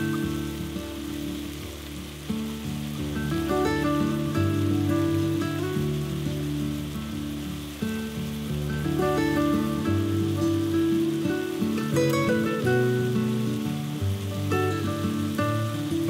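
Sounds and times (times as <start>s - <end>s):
background music with held notes: 0.0s - 16.0s
meat and onions sizzling in oil: 0.0s - 16.0s.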